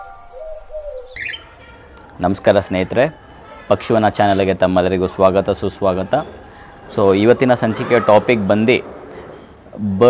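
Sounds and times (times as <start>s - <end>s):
bird cooing: 0.0s - 1.6s
high bird chirps: 0.0s - 1.8s.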